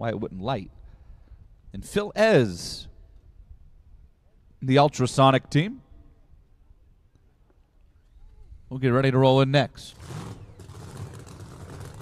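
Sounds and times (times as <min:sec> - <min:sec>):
low uneven engine rumble: 0:09.9 - 0:12.0.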